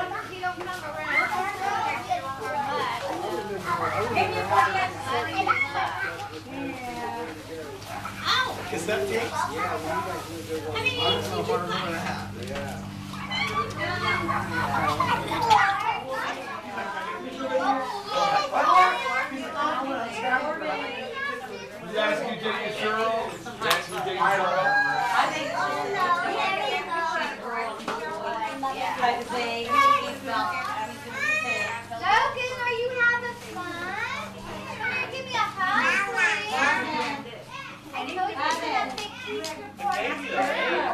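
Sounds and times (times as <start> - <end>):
children babbling and shrieking: 0.0 - 22.0, 24.2 - 28.5, 29.4 - 40.9
adults talking: 0.0 - 40.9
steady low hum: 1.6 - 16.2.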